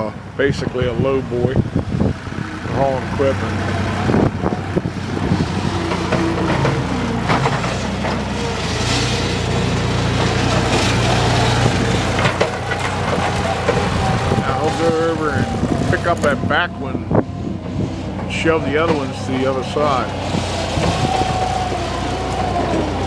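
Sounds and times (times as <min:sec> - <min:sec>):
tractor engine idling: 0:00.0 - 0:23.0.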